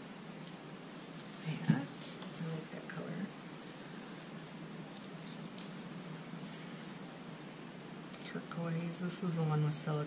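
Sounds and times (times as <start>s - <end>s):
room hiss: 0.0s - 10.0s
soft taps and rustles: 0.5s - 2.3s.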